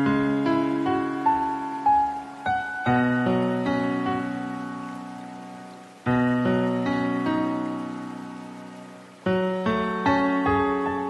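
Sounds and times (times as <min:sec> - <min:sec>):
soft solo piano: 0:00.0 - 0:08.3
soft steady hiss: 0:00.0 - 0:11.0.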